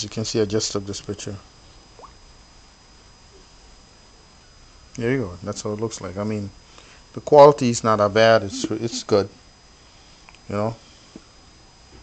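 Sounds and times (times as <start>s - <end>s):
thin high whine: 7.6s - 10.8s.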